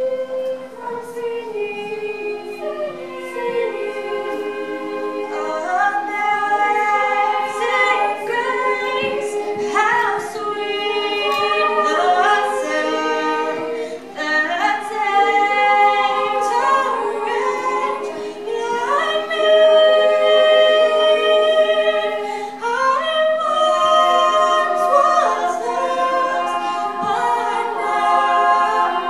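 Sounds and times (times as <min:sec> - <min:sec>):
choir singing a cappella: 0:00.0 - 0:29.0.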